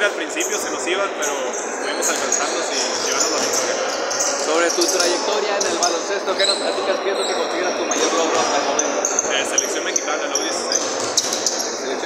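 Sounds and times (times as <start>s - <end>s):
people talking: 0.0s - 12.0s
basketballs bouncing on court: 2.1s - 5.9s, 8.0s - 11.8s.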